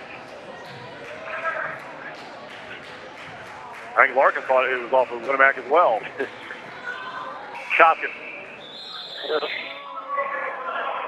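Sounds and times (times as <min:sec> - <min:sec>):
crowd murmuring in echoing hall: 0:00.0 - 0:11.0.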